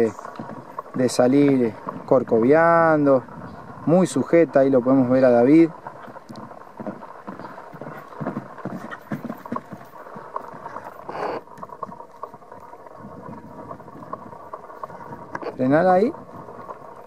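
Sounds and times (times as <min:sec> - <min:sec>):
hoofbeats on grass and dirt: 0:00.0 - 0:17.0.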